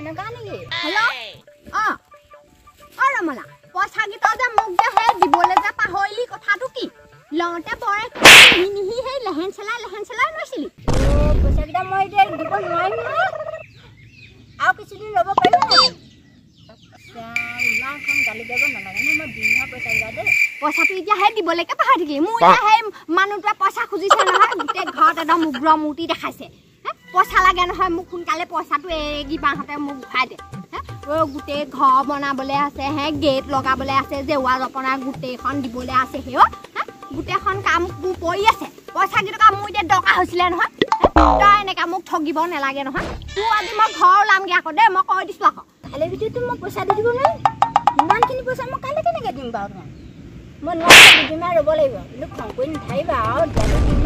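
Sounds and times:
chickens squawking: 8.2s - 8.7s, 50.8s - 51.4s
comic boing sound effect: 8.2s - 8.7s, 40.8s - 41.7s, 47.4s - 48.3s
chickens calling: 12.2s - 14.4s.

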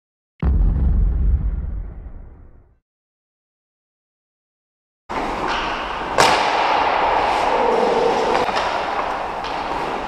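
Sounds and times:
deep rumbling boom: 0.4s - 2.8s.

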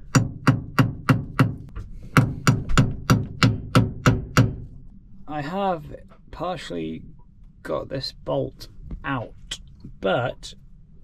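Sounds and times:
hammer striking metal bolt: 0.0s - 4.7s.

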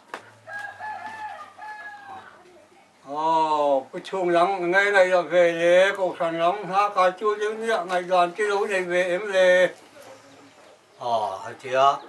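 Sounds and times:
rooster crowing: 0.4s - 2.4s.

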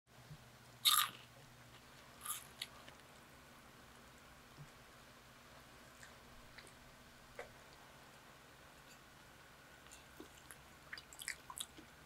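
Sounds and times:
electric fan humming: 0.1s - 12.0s
crunchy bites: 0.8s - 1.3s.

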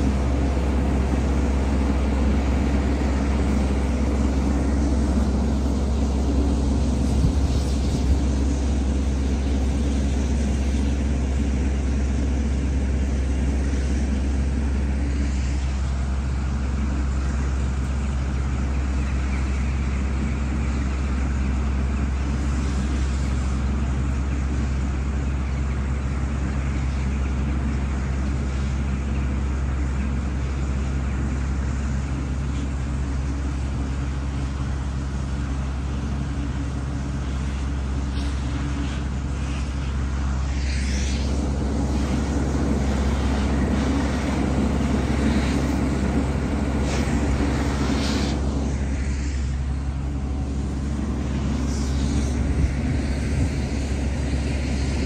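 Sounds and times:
diesel machinery engines droning: 0.0s - 55.0s.

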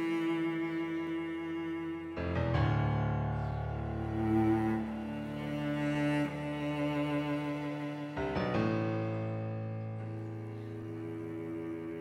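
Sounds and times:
low bowed strings chord: 0.0s - 12.0s.

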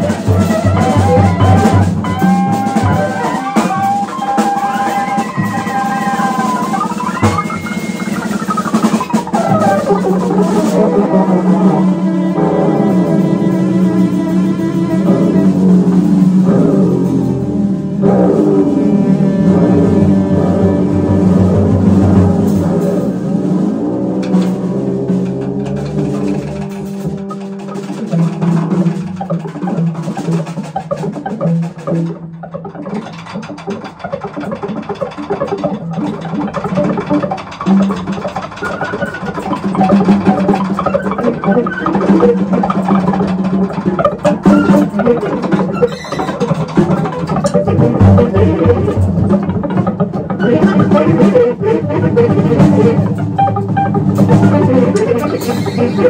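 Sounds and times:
tenor saxophone: 0.0s - 33.0s, 36.7s - 56.0s
drum kit: 0.0s - 56.0s
guitar: 0.0s - 56.0s.

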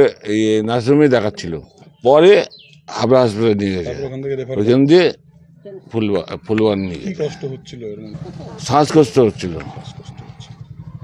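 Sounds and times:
small engine idling: 8.1s - 11.0s.

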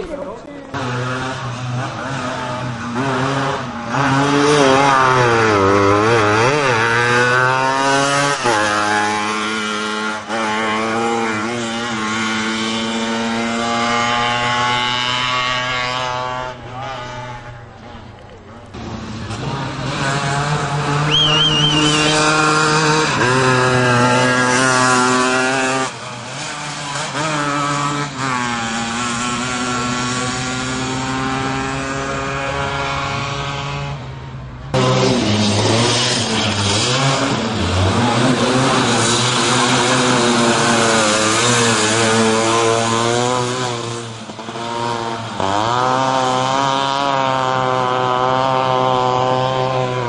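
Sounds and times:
small engines revving: 0.0s - 50.0s.

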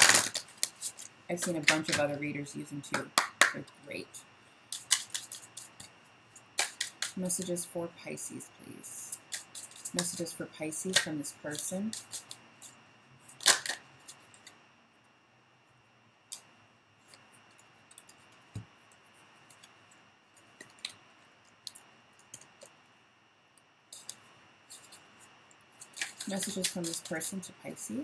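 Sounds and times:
cards shuffling clicks and taps: 4.7s - 7.2s, 9.1s - 12.4s, 13.3s - 14.6s, 16.3s - 19.8s, 20.4s - 21.0s, 23.9s - 27.5s
card snap: 6.6s - 7.2s.

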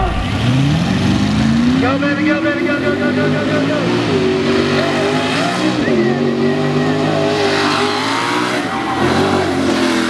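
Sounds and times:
truck engine revving: 0.0s - 10.0s.

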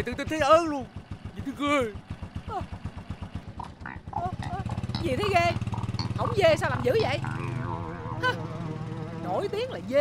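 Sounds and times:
motorbike engine idling: 0.0s - 10.0s
voices: 3.6s - 10.0s.

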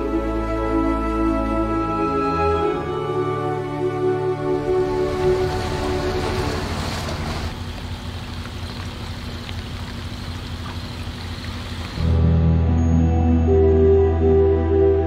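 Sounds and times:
background music: 0.0s - 7.5s, 12.0s - 15.0s
boat motor rumble: 0.0s - 15.0s
water noise: 2.6s - 12.2s.

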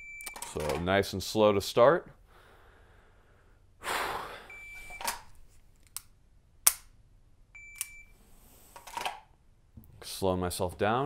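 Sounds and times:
pistol dry-fire click: 5.8s - 6.9s
shot timer beep: 7.6s - 8.1s.

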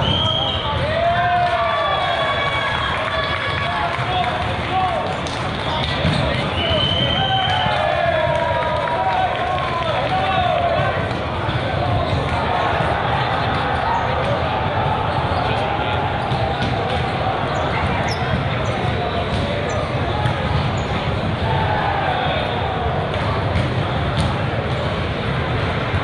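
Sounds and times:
babble of many voices: 0.0s - 26.0s
volleyballs bouncing and being struck: 3.8s - 21.6s, 22.8s - 26.0s.

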